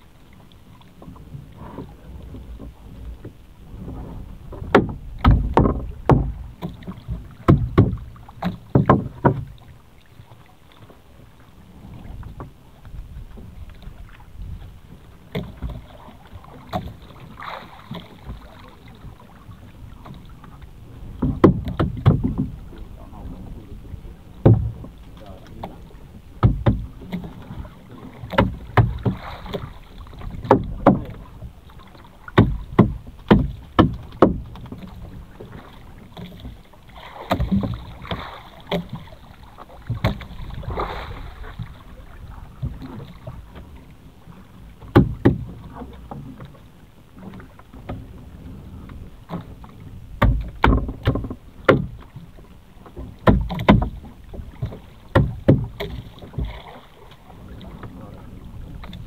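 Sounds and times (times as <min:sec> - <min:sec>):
low steady background noise: 0:00.0 - 0:59.0
knocks and thumps on boat: 0:00.6 - 0:59.0.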